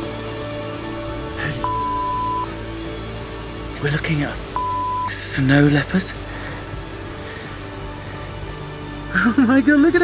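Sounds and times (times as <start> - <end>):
soft sustained background music: 0.0 - 10.0
outdoor hiss: 0.2 - 9.8.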